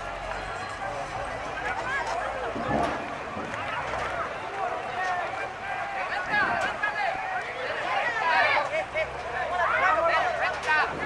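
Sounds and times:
people talking and calling out: 0.0s - 11.0s
steady background noise: 0.0s - 11.0s.

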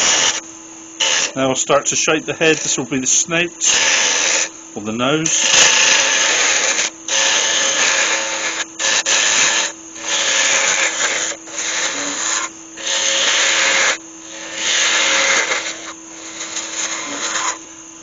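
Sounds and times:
lathe motor humming: 0.0s - 18.0s
lathe tool scraping wood: 0.0s - 18.0s.

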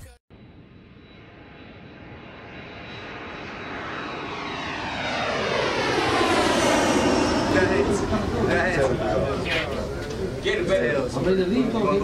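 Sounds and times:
jet aircraft flyby: 0.3s - 12.0s.

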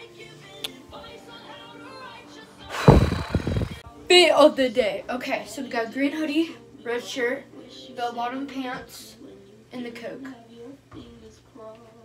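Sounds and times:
faint song in background: 0.0s - 12.0s
loud thump: 2.8s - 3.8s.

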